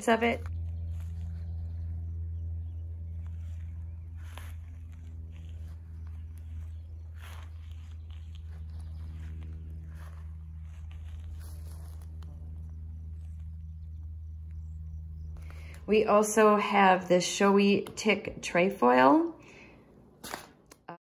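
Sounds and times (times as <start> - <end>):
steady low hum: 0.0 - 21.0
faint rustles: 0.3 - 16.0.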